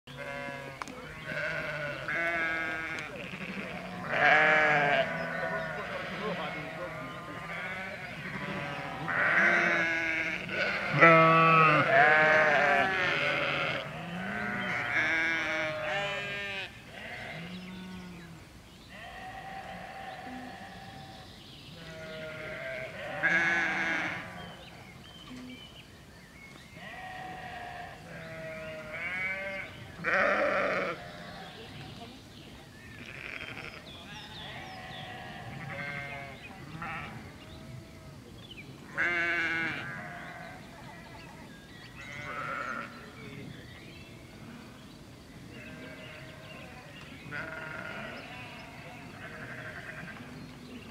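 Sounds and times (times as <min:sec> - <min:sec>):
sheep bleating: 0:00.1 - 0:18.3, 0:18.9 - 0:21.1, 0:21.8 - 0:24.5, 0:26.8 - 0:31.5, 0:33.0 - 0:37.2, 0:39.0 - 0:40.6, 0:42.1 - 0:43.0, 0:47.3 - 0:50.3.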